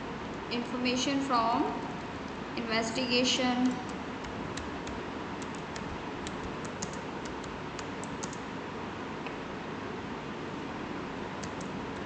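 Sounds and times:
keyboard key clicks: 0:03.6 - 0:08.4.

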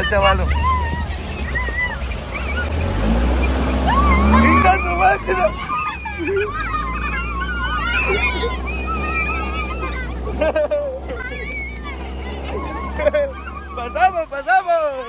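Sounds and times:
children shrieking and laughing: 0:00.0 - 0:15.0
dune buggy engine running: 0:00.0 - 0:15.0
water splashing: 0:00.0 - 0:15.0.

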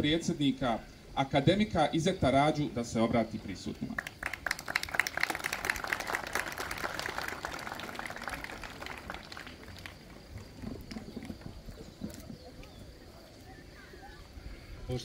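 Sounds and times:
audience applauding: 0:04.0 - 0:11.8.

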